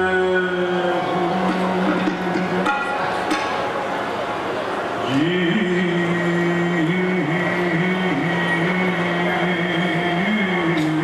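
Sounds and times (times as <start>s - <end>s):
man singing hymn: 0.0s - 2.6s, 5.1s - 11.0s
harmonium accompaniment: 0.0s - 11.0s.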